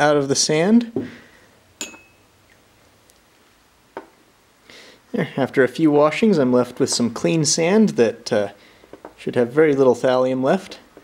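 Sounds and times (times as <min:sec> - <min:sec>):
glass beakers clinking: 0:01.8 - 0:02.3.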